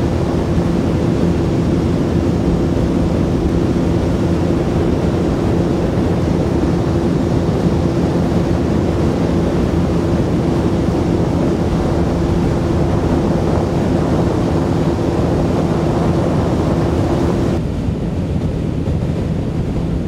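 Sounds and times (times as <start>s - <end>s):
water wash: 0.0s - 17.6s
motorboat engine drone: 0.0s - 20.0s
wind rushing over microphone: 0.0s - 20.0s.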